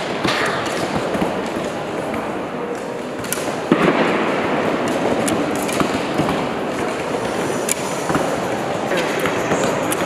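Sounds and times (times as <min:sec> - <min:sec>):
crowded hall noise: 0:00.0 - 0:10.0.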